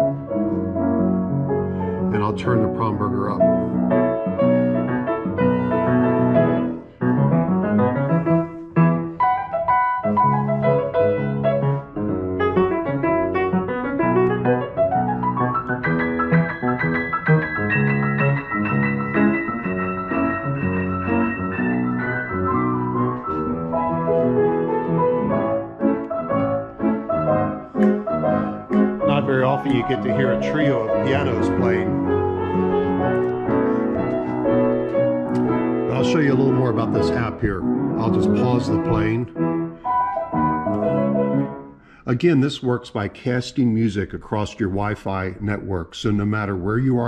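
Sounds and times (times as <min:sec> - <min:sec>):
player pianos playing: 0:00.0 - 0:47.0.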